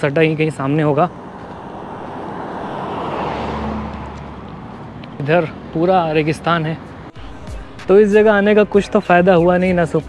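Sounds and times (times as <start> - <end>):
car passing: 0.1 - 7.2.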